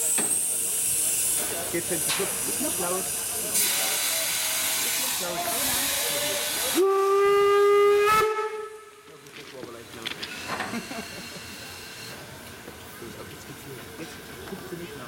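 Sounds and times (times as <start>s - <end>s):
steam locomotive hissing: 0.0s - 8.4s, 10.2s - 15.0s
steam whistle blast: 6.7s - 8.9s.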